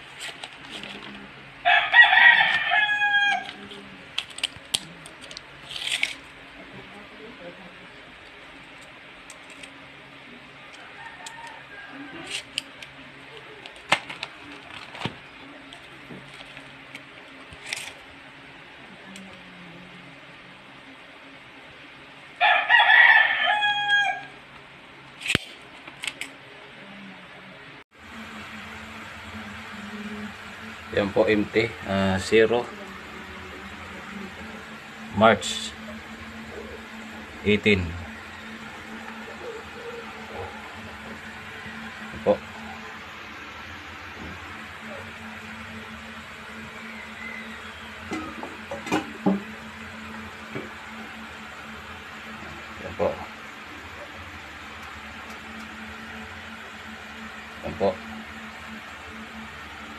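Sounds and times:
rooster crowing: 1.6s - 3.8s, 10.7s - 12.6s, 22.4s - 24.4s, 28.6s - 59.4s
low motor hum: 26.7s - 59.9s.

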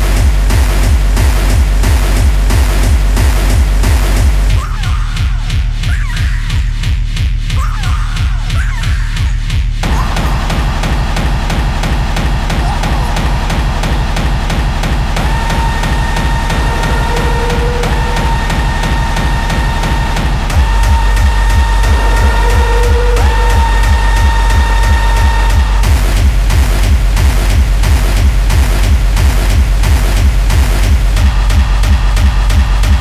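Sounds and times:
bass hits: 0.0s - 5.9s, 9.4s - 33.0s
hi-hats: 0.0s - 8.5s, 9.8s - 33.0s
fast kick-drum beat: 0.0s - 33.0s.

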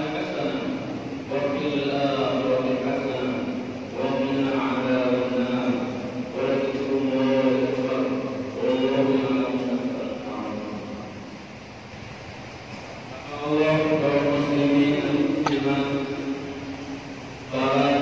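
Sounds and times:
man chanting over loudspeaker: 0.0s - 11.2s, 13.1s - 16.7s, 17.4s - 18.0s.

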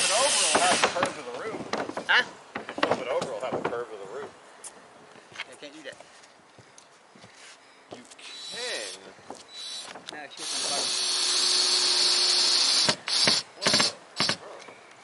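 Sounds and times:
cordless drill driving a screw: 0.0s - 1.0s, 8.2s - 14.4s.

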